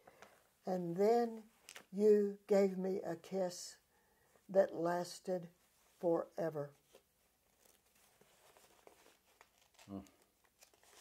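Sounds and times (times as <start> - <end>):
paper sheets rustling: 6.8 - 11.0
person humming mm: 9.9 - 10.2.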